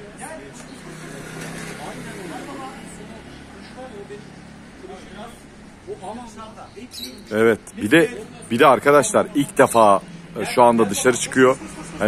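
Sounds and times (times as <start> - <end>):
distant indistinct voices: 0.0 - 12.0
outdoor street background: 0.0 - 12.0.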